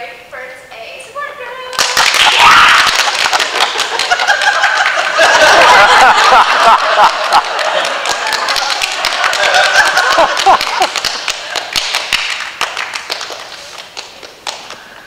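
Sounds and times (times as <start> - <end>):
people clapping: 1.7 - 15.0
laughter: 3.4 - 11.7.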